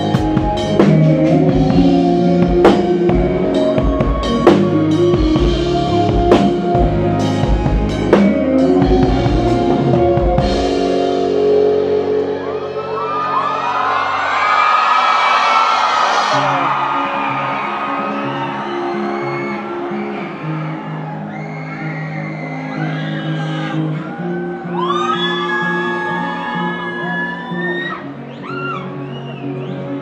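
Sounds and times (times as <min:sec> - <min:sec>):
rock band chord ringing: 0:00.0 - 0:14.4
guitar and bass slow notes: 0:00.0 - 0:14.5, 0:16.2 - 0:30.0
crowd whooping and cheering: 0:00.0 - 0:30.0.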